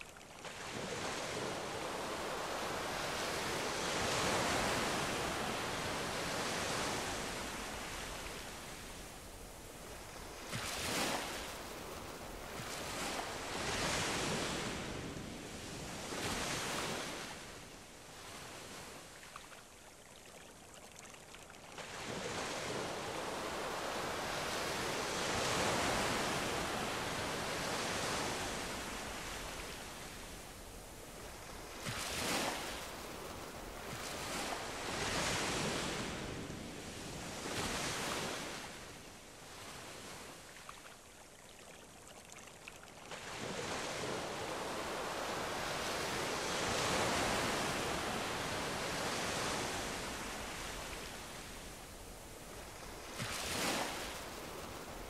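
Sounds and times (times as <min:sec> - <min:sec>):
ocean surf washing on shore: 0:00.0 - 0:19.2, 0:21.8 - 0:40.8, 0:43.1 - 0:55.0.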